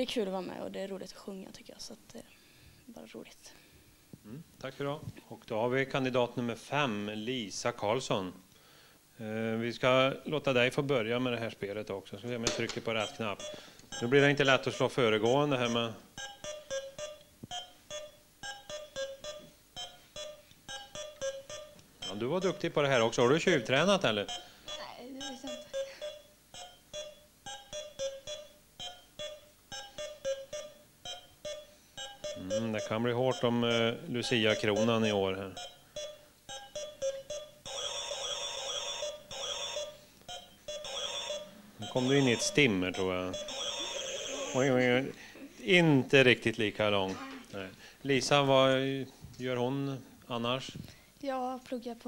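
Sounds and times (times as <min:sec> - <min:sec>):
electronic beeping tune: 0:13.0 - 0:45.0
warbling electronic tone: 0:40.7 - 0:44.8.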